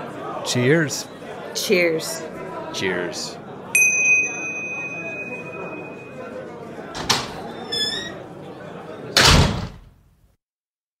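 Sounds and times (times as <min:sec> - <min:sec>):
door slamming shut: 0:07.0 - 0:08.2, 0:09.2 - 0:10.0.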